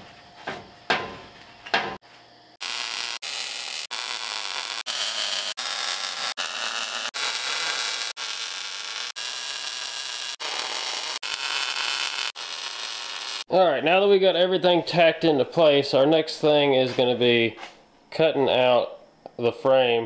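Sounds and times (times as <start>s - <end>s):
welding arc crackling and hissing: 2.6s - 13.5s.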